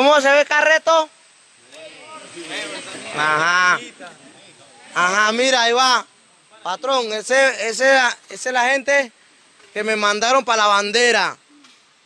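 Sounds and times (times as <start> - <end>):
faint voices talking: 1.0 - 11.8.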